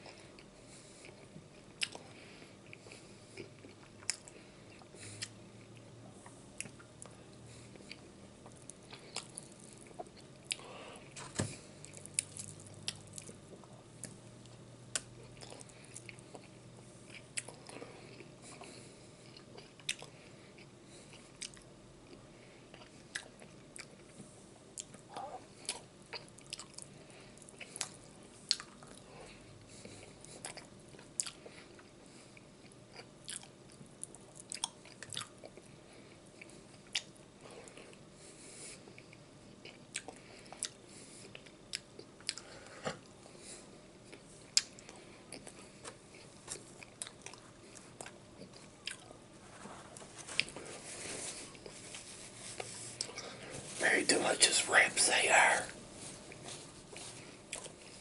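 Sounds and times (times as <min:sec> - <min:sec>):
person chewing and biting: 0:11.4 - 0:14.2, 0:14.9 - 0:24.2, 0:32.6 - 0:35.7, 0:38.9 - 0:42.7, 0:44.0 - 0:49.2, 0:56.3 - 0:58.0.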